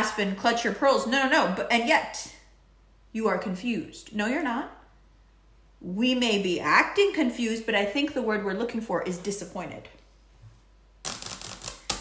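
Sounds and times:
cards clicking and rustling: 0:11.0 - 0:12.0.

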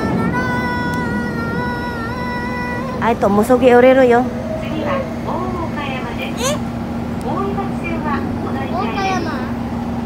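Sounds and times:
low rumble of running train: 0:00.0 - 0:10.0
train traction motor whine: 0:00.0 - 0:10.0.

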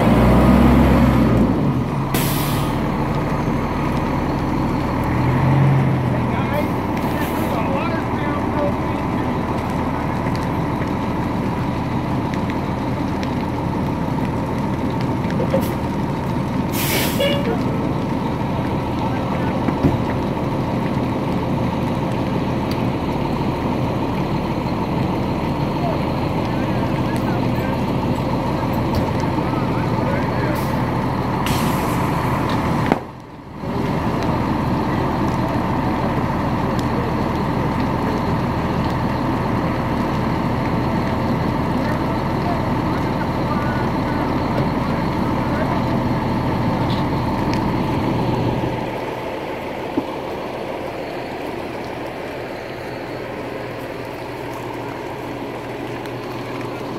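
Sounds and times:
diesel engine droning: 0:00.0 - 0:56.9.

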